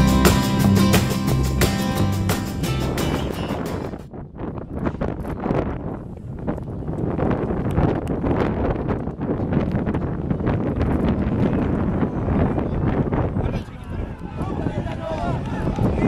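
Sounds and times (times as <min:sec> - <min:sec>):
guitar music: 0:00.0 - 0:04.1
wind rumbling on microphone: 0:02.3 - 0:16.0.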